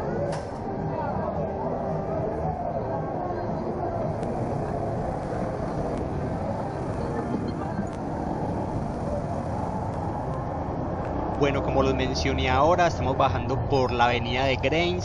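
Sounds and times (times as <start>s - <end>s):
road and wind noise: 0.0s - 15.0s.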